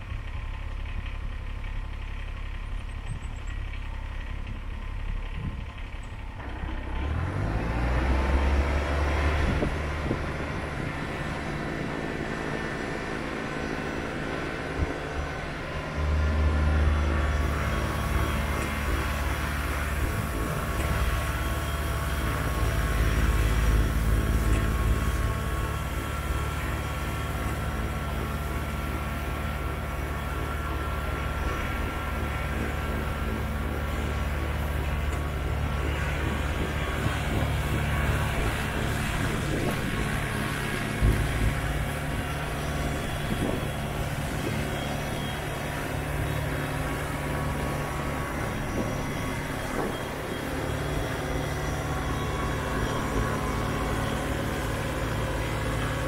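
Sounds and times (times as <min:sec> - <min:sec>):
tractor diesel engine: 0:00.0 - 0:56.0.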